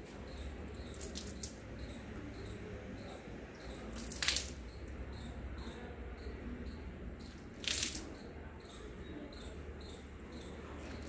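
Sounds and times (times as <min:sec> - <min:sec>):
water dripping: 0:00.4 - 0:02.4, 0:03.5 - 0:05.4, 0:07.2 - 0:08.4
short wet clicks: 0:00.9 - 0:01.6, 0:03.9 - 0:04.7, 0:07.3 - 0:08.2
hands rubbing wet hair: 0:01.0 - 0:01.6.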